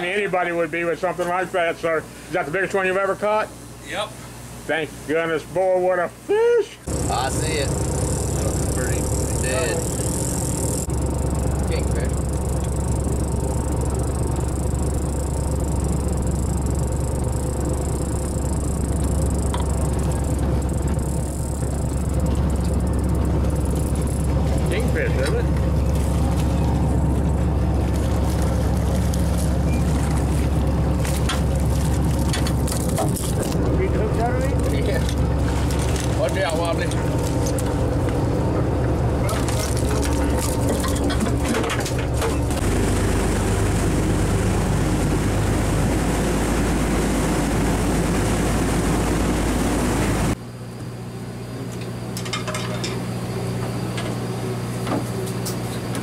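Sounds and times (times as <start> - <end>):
boat engine droning: 6.9 - 52.2.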